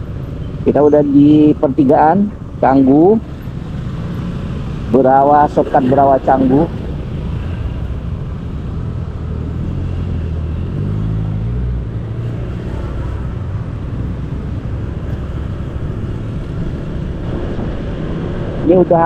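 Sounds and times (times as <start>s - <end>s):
passing motorbikes and cars: 0.0s - 19.0s
road and wind noise: 0.0s - 19.0s.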